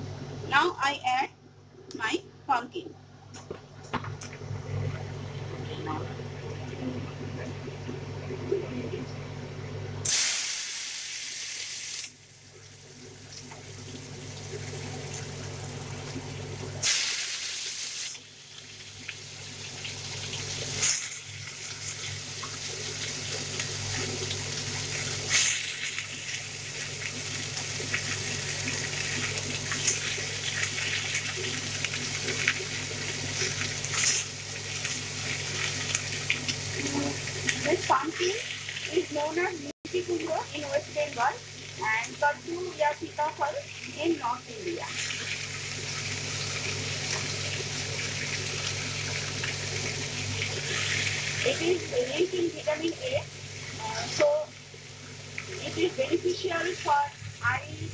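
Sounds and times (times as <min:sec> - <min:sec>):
vegetables sizzling in hot oil: 0:10.0 - 0:57.9.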